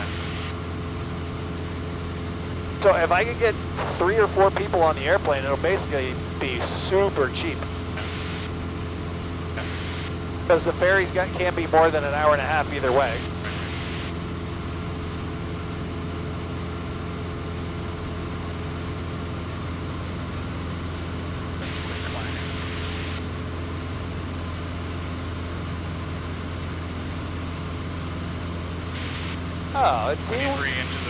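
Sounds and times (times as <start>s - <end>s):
aircraft engine and propeller drone: 0.0s - 31.0s.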